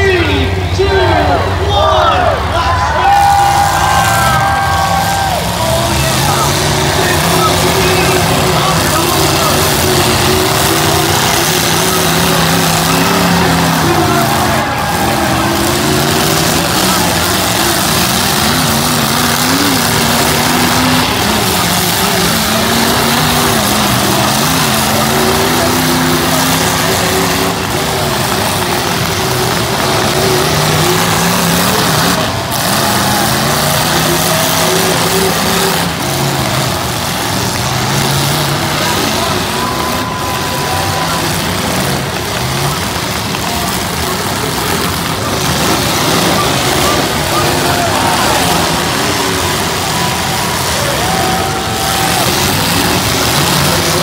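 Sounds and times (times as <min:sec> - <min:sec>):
car engines revving hard: 0:00.0 - 0:54.0
loud arena noise: 0:00.0 - 0:54.0.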